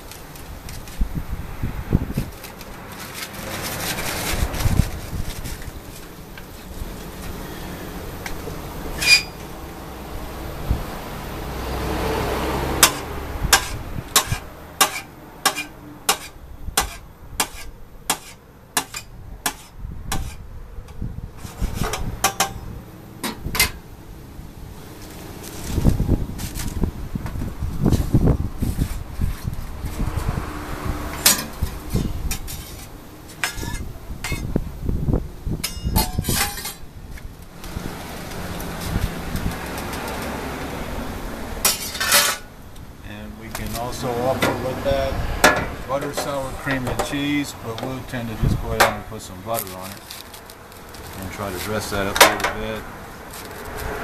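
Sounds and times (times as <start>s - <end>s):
metal utensils clanking and scraping: 8.3s - 9.4s, 12.8s - 20.4s, 21.4s - 22.6s, 31.1s - 34.5s, 35.6s - 36.9s, 41.6s - 42.5s, 45.4s - 48.1s
knife chopping in metal pan: 12.8s - 20.4s.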